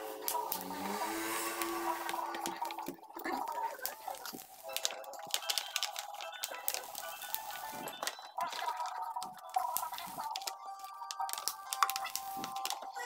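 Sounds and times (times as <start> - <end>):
plastic film peeling off glass: 0.1 - 13.0.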